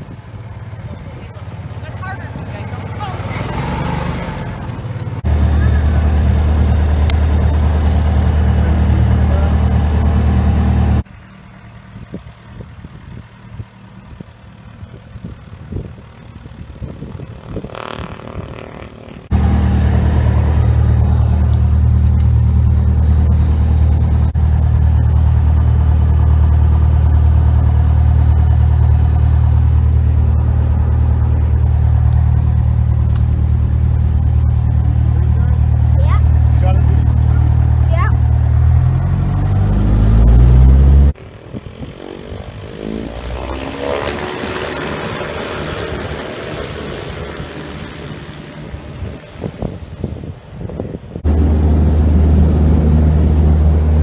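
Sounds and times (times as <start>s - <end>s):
airplane engine and propeller: 0.0s - 54.0s
distant airplane outside: 0.0s - 54.0s.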